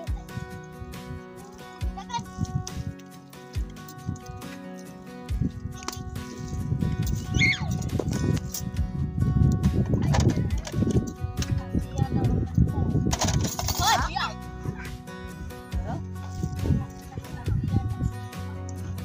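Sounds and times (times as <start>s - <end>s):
background music with held tones: 0.0s - 19.0s
voices: 9.9s - 19.0s.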